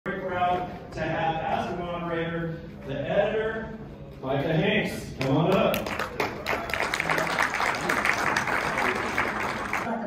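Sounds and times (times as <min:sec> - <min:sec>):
audience clapping: 0:05.2 - 0:10.0.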